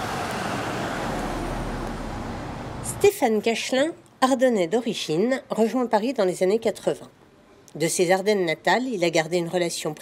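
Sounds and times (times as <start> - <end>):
car driving past: 0.0 - 3.0.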